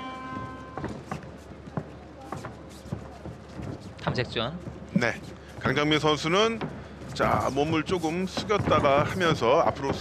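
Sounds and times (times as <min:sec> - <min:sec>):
horn holding steady note: 0:00.0 - 0:00.8.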